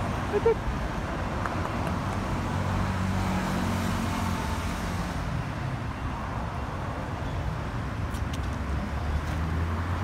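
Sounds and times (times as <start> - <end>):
road traffic: 0.0 - 10.0.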